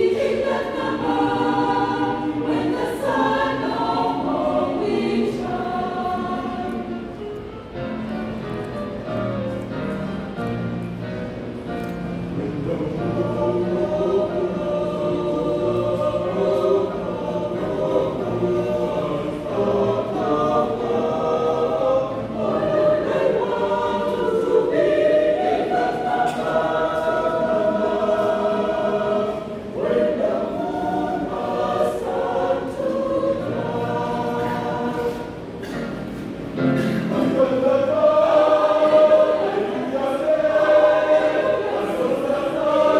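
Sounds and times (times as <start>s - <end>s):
choir singing gospel: 0.0s - 11.3s, 12.0s - 42.9s.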